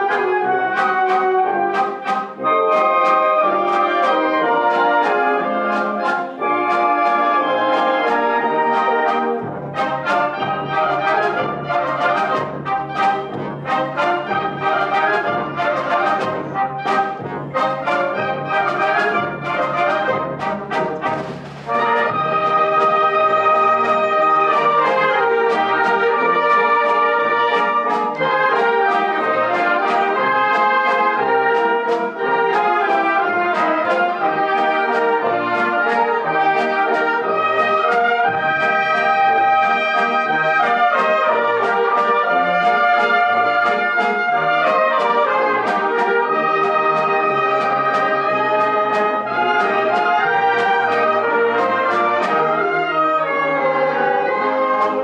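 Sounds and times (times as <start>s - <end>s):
percussion strokes: 0.0s - 52.6s
concert band playing: 0.0s - 55.0s.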